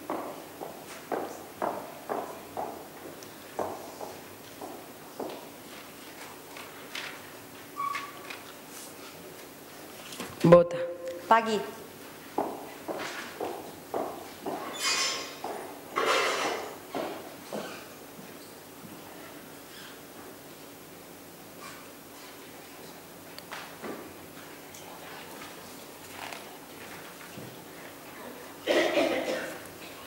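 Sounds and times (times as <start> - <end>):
footsteps walking: 12.0 - 15.7, 23.5 - 28.2.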